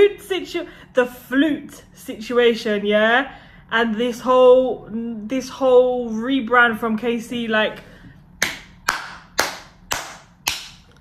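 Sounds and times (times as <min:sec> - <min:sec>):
person clapping hands: 0:08.4 - 0:10.9.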